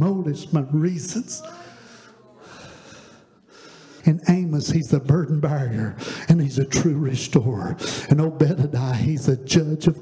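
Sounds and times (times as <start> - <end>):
faint breath: 1.4 - 4.1, 6.0 - 6.3.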